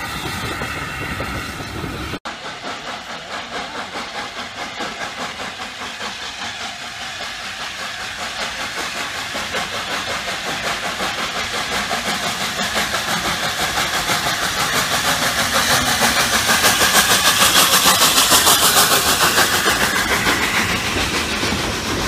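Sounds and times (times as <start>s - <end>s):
steam locomotive exhaust beats: 0.0s - 22.0s.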